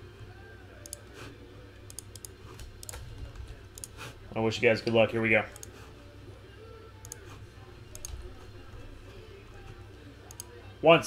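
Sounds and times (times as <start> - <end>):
computer clicks: 0.8 - 1.1, 1.8 - 3.0, 3.7 - 4.0, 5.5 - 5.7, 7.9 - 8.2, 10.3 - 10.5.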